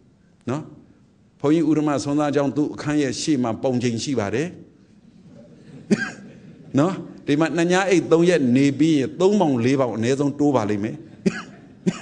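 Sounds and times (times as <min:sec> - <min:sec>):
man giving a sermon: 0:00.4 - 0:04.8, 0:06.6 - 0:11.4
short coughs: 0:05.6 - 0:06.3, 0:11.2 - 0:12.0.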